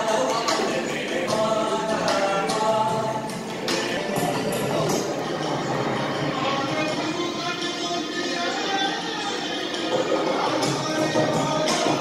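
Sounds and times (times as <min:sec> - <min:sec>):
drum beats: 0:00.0 - 0:08.4, 0:09.1 - 0:12.0
group of voices singing: 0:00.0 - 0:12.0.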